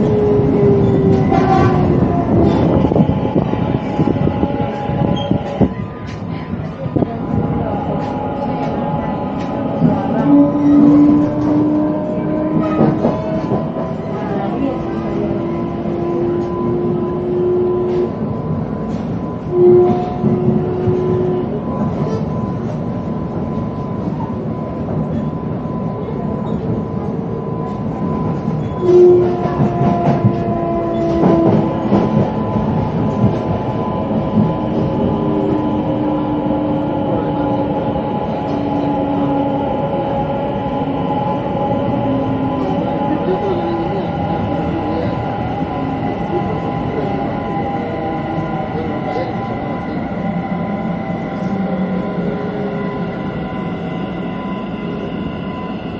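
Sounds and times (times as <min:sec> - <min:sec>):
train running rumble: 0:00.0 - 0:55.9.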